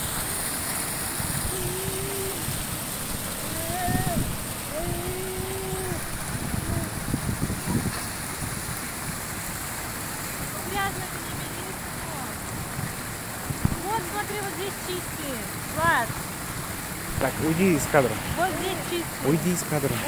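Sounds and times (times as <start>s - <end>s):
small waterfall splashing: 0.0s - 20.0s.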